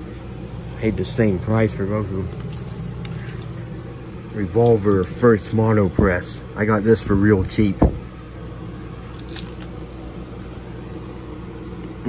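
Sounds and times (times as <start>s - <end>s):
steady low hum: 0.0s - 12.0s
plastic sleeve crinkling: 1.7s - 5.4s, 9.0s - 10.7s.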